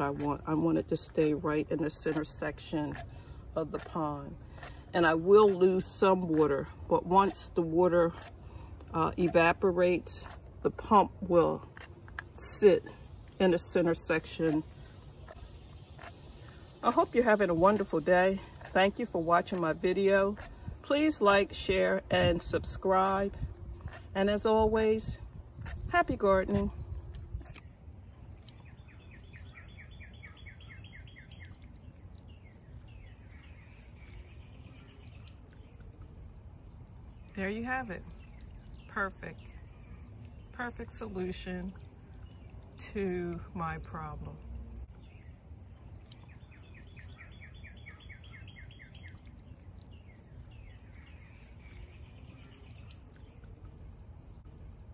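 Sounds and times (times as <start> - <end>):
water jets pattering on water: 0.0 - 54.9
bird chirping: 27.4 - 42.8, 44.5 - 54.5
fountain water splashing: 27.5 - 54.9.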